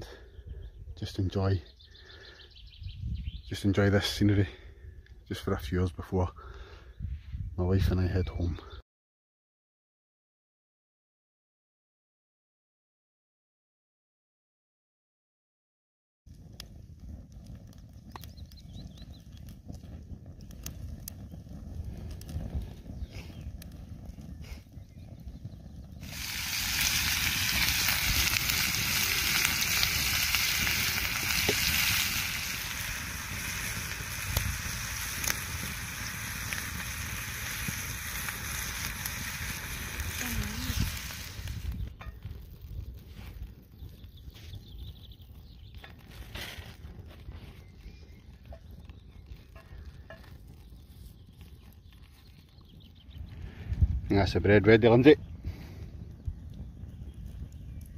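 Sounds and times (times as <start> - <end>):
food sizzling in a pan: 26.0 - 41.7.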